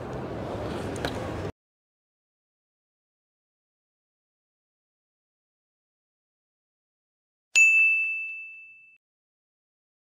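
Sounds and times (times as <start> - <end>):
bell-like ding: 7.6 - 9.0.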